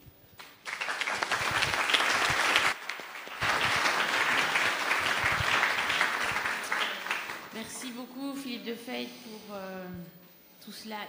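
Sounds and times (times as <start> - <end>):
audience applauding: 0.4 - 8.0.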